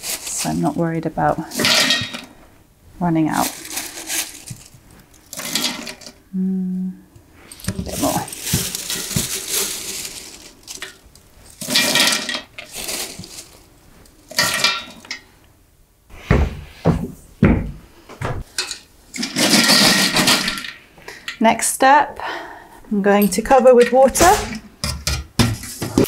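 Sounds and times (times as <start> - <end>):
cones clattering into metal pot: 1.5 - 2.4, 3.3 - 6.2, 7.5 - 13.7, 14.3 - 15.3, 18.5 - 21.4, 23.2 - 26.0
dull thumps: 16.2 - 18.5.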